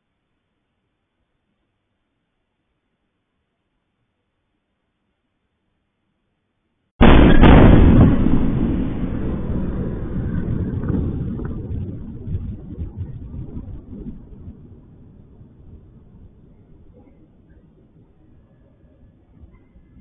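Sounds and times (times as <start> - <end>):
explosion with low rumble: 7.0 - 18.4.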